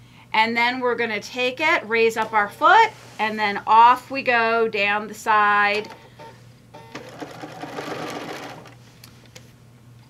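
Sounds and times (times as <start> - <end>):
sewing machine running: 6.8 - 8.8.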